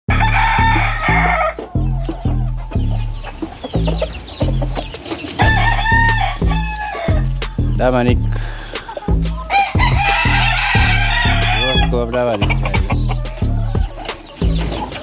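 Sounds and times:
rooster crowing: 0.1 - 2.5, 5.4 - 7.4, 9.3 - 11.9
music with heavy bass beat: 0.1 - 15.0.

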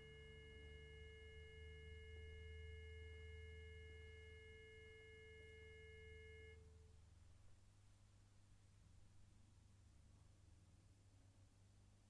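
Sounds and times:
sustained pure tone chord: 0.0 - 6.8.

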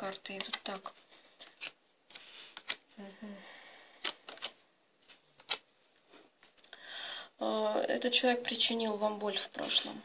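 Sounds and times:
cards rustling: 0.1 - 2.9, 4.0 - 5.7
cards clicking on wooden table: 0.2 - 0.8, 1.4 - 2.8, 4.0 - 4.6.

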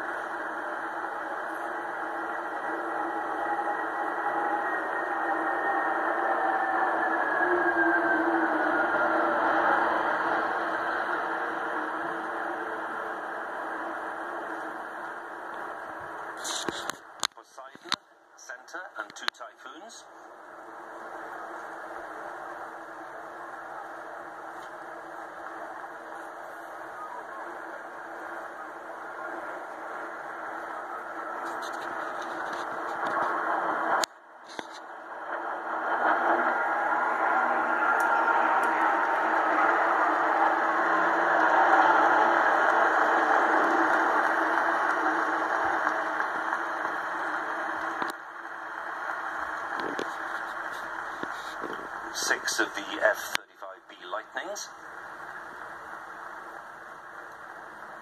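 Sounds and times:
jet aircraft engine roar: 0.0 - 17.2, 18.6 - 58.0.

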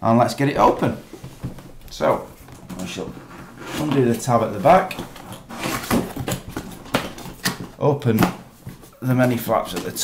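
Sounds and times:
cardboard box rustling and scraping: 0.6 - 7.8.

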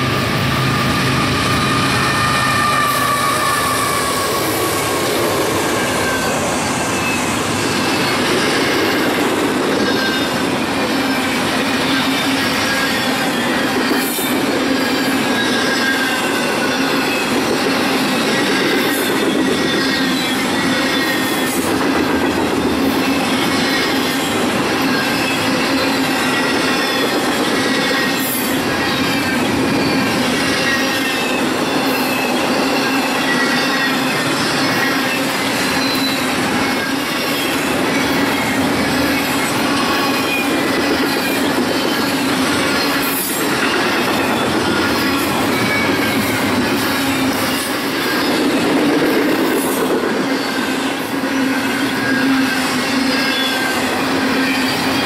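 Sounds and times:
high flange squeals: 0.0 - 55.0
steel wheels on rail: 0.0 - 55.0.

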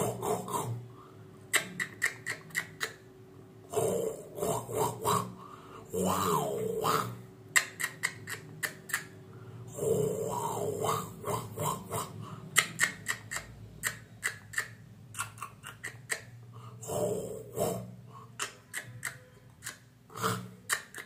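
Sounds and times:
man making mimicry vocal sounds: 0.0 - 0.8, 3.8 - 21.0.

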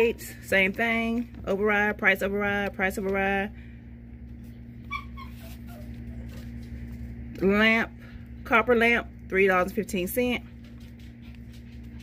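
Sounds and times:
steady low hum: 0.0 - 12.0
dog whining: 4.8 - 6.5.

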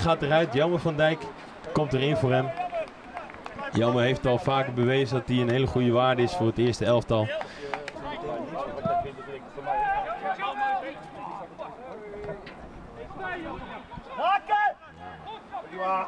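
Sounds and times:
men calling and shouting: 0.0 - 16.0.

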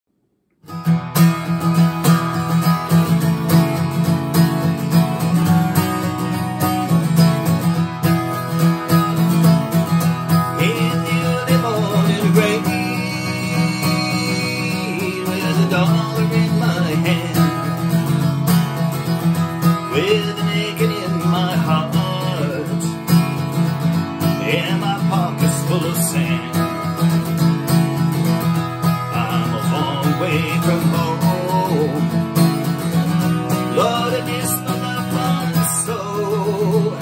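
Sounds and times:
acoustic guitar strumming: 0.6 - 37.0
man singing: 10.3 - 18.5, 19.5 - 37.0.

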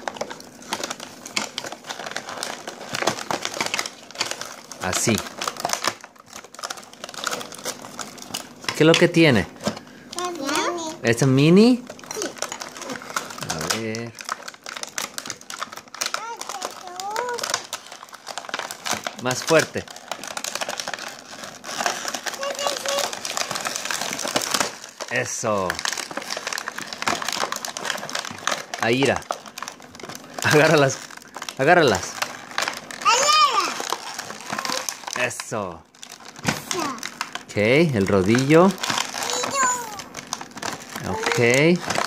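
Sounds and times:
plastic packaging crinkling: 0.0 - 42.0
child's high-pitched vocal sounds: 10.2 - 11.0, 12.1 - 13.1, 16.2 - 17.5, 22.3 - 23.2, 33.0 - 33.8, 36.6 - 37.0, 39.2 - 40.1.

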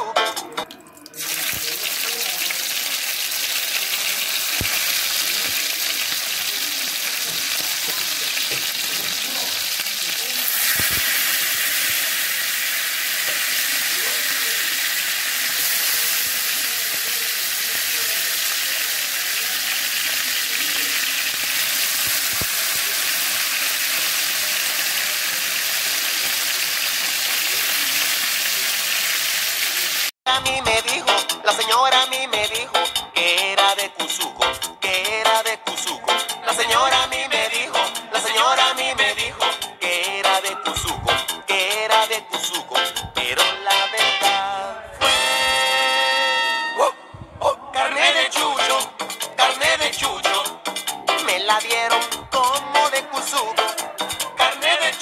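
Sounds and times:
meat sizzling in a pan: 1.2 - 30.2.

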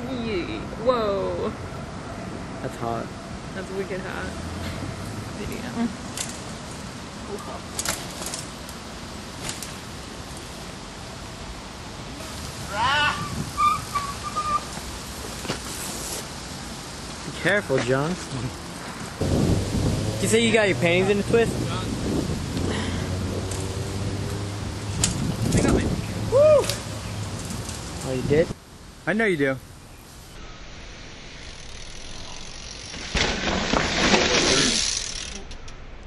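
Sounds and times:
bike tyres on dirt: 6.0 - 28.4, 30.0 - 35.6.

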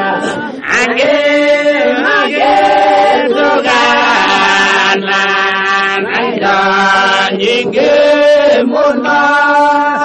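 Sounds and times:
voices singing slow song: 0.0 - 10.0.

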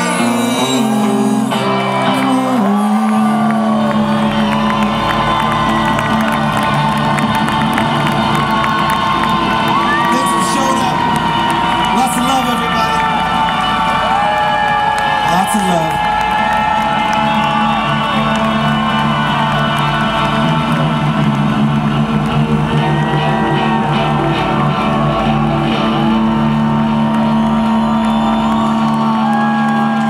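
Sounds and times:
crowd noise: 0.0 - 30.0
electric guitar and bass droning: 0.0 - 30.0.

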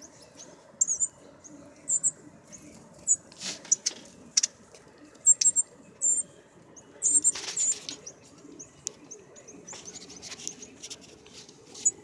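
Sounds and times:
bird chip notes: 0.0 - 10.8
wings fluttering in shrub: 2.8 - 5.0, 7.2 - 8.5.

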